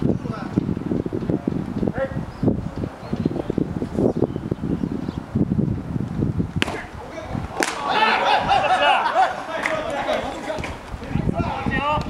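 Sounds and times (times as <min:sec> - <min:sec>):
bat hitting baseball: 0:06.6 - 0:08.0
players calling out: 0:06.6 - 0:12.0
sharp clack: 0:07.6 - 0:07.8.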